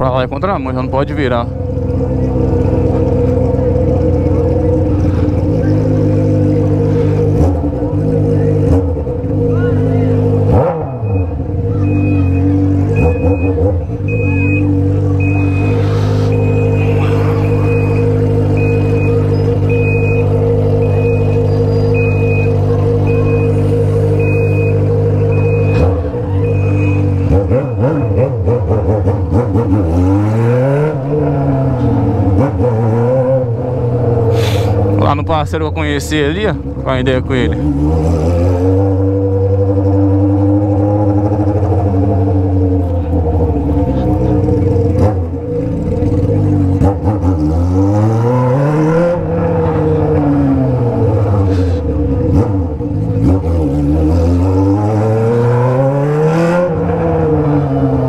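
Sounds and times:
engine throttle blips: 0:00.0 - 0:58.0
motorcycle engine running unmuffled: 0:01.6 - 0:09.3.

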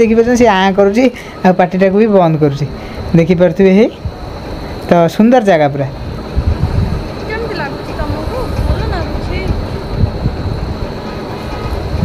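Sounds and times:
distant voices: 0:00.0 - 0:12.0
traffic rumble: 0:00.0 - 0:12.0.

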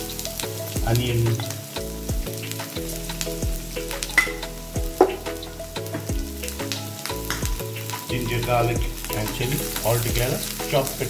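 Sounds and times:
oil crackling and popping: 0:00.0 - 0:11.0
vegetables sizzling in hot oil: 0:00.0 - 0:11.0.

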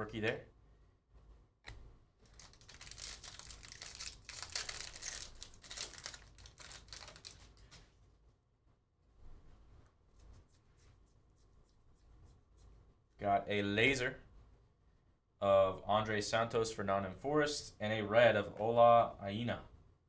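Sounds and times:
foil wrapper tearing and crinkling: 0:02.2 - 0:07.6.

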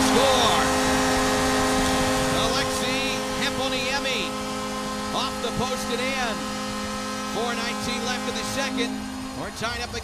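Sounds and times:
crowd cheering: 0:00.0 - 0:04.0
goal horn blast: 0:00.0 - 0:09.9.

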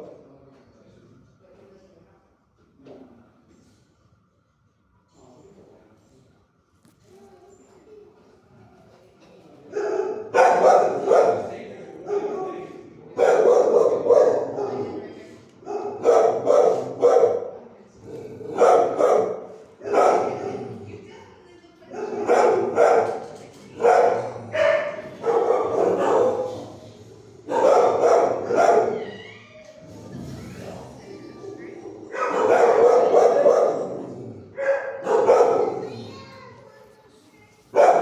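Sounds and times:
dogs barking: 0:09.7 - 0:12.5, 0:13.1 - 0:15.0, 0:15.6 - 0:17.6, 0:18.4 - 0:20.7, 0:21.9 - 0:29.1, 0:32.0 - 0:36.0, 0:37.7 - 0:38.0.

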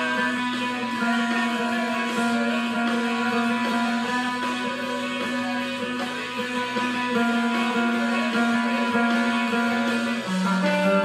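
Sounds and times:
clean electric guitar picking: 0:00.0 - 0:11.0.

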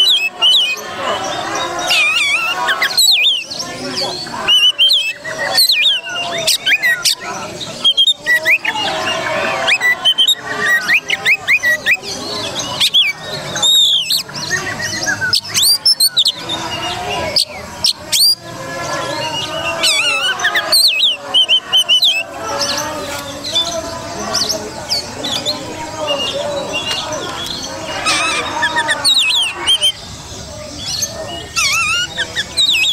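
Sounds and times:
bird singing varied song: 0:00.0 - 0:32.9.

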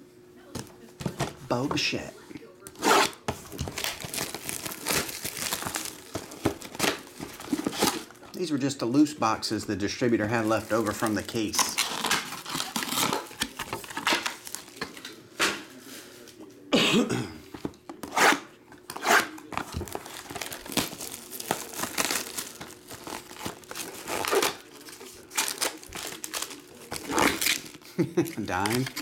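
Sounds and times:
shrink-wrap crinkling and tearing: 0:03.0 - 0:08.2, 0:10.0 - 0:15.0, 0:19.4 - 0:29.0.

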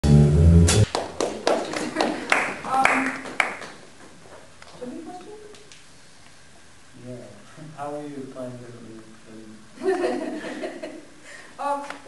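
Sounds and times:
drum strikes with cymbal ringing: 0:00.0 - 0:00.9
jazz group final chord: 0:00.0 - 0:00.9.

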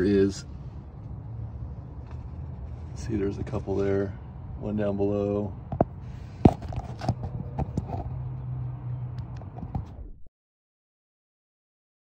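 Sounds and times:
phone handling clicks and knocks: 0:05.7 - 0:08.1.

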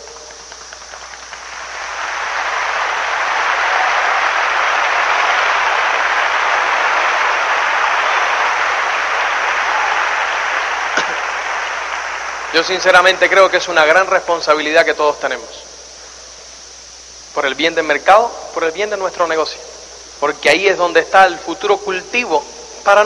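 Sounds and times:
audience applauding: 0:00.0 - 0:14.0.

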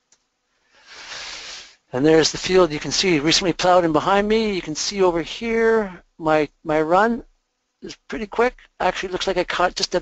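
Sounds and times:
man drawing a breath: 0:00.6 - 0:01.8
man speaking: 0:00.9 - 0:07.2, 0:07.8 - 0:10.0.

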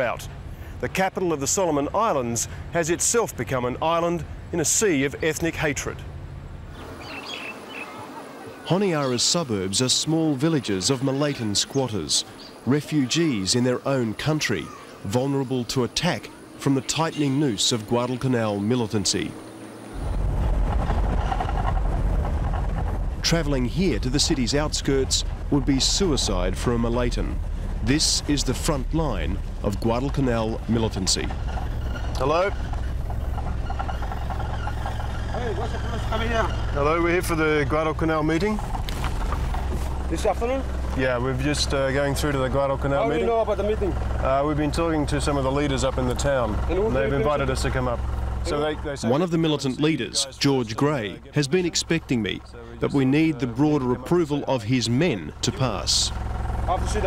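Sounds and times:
car engine and road noise: 0:00.0 - 0:57.0
high bird chirps: 0:06.8 - 0:08.1
faint voice outside: 0:07.7 - 0:08.7
low rumble: 0:19.9 - 0:49.4.

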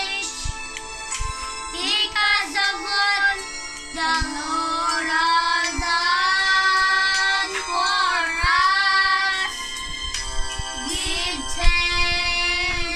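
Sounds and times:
boys singing long notes: 0:01.8 - 0:09.7, 0:10.8 - 0:12.9.

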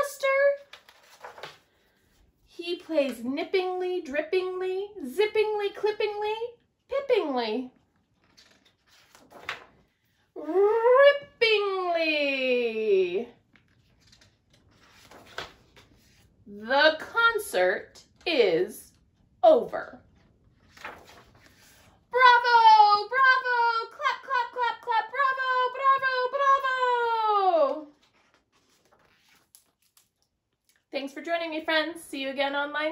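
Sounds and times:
book page turning: 0:00.6 - 0:02.2, 0:07.9 - 0:10.0, 0:13.4 - 0:16.4, 0:20.0 - 0:22.0, 0:27.7 - 0:30.4.

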